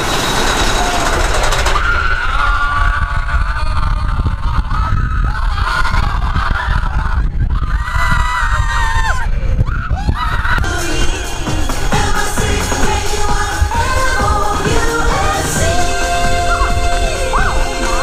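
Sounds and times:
riders screaming and yelling: 0:00.0 - 0:10.7
low rumble of moving ride: 0:00.0 - 0:18.0.

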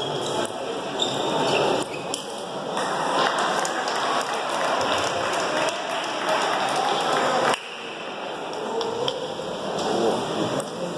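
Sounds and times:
voices: 0:00.0 - 0:10.9
spectators applauding: 0:02.8 - 0:08.0.

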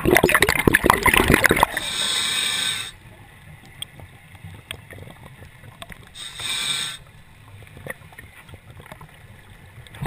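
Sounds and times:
scuba regulator breath hiss: 0:01.7 - 0:03.0, 0:06.2 - 0:07.1
faint clicks: 0:03.4 - 0:06.5.

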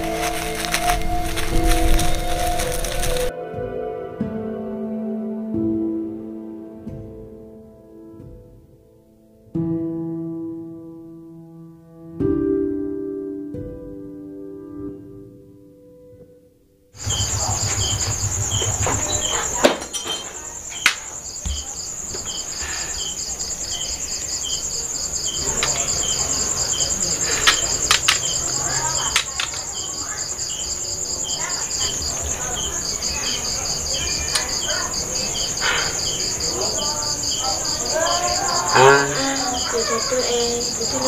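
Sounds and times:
insects trilling and chirping: 0:00.0 - 0:03.3, 0:17.0 - 0:41.0.

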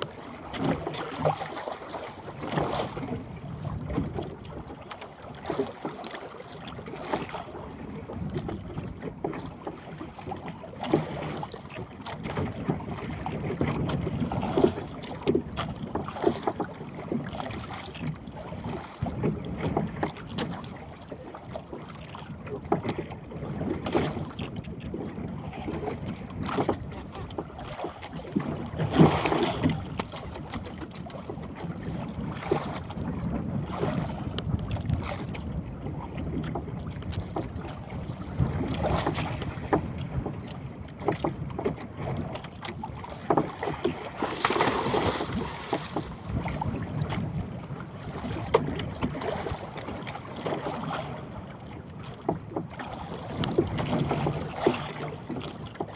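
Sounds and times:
knocks and clicks from boat: 0:00.0 - 0:55.9
water slapping boat hull: 0:00.0 - 0:55.9
wind buffeting microphone: 0:02.3 - 0:04.8, 0:06.7 - 0:10.0, 0:10.7 - 0:20.7, 0:22.2 - 0:55.9.

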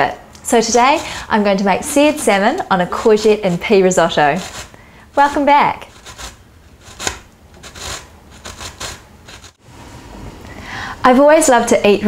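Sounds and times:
kitchen utensils scraping and clicking: 0:01.9 - 0:09.6.

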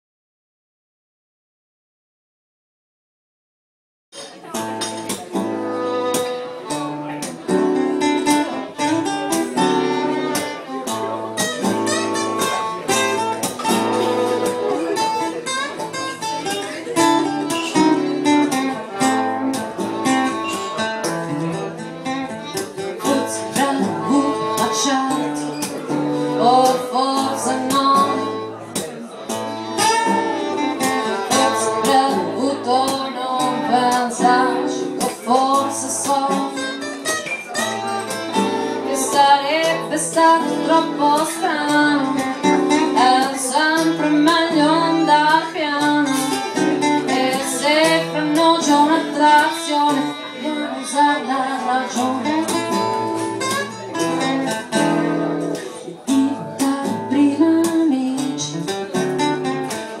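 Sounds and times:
acoustic guitar strummed and picked: 0:04.2 - 1:00.0.

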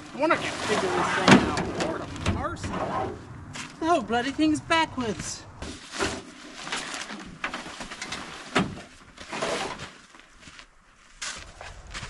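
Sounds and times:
tent fabric rustling: 0:00.0 - 0:03.8, 0:05.6 - 0:12.0.

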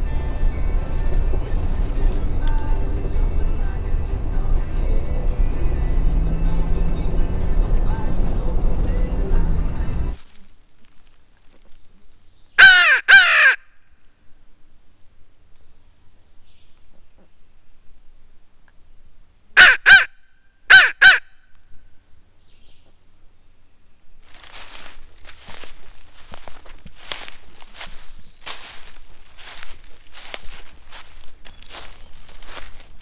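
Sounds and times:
road rumble inside truck cab: 0:00.0 - 0:10.2
crow call caws: 0:12.6 - 0:13.7.

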